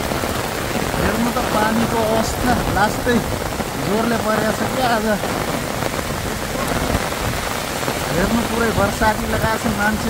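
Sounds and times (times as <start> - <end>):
heavy rain on umbrella: 0.0 - 10.0.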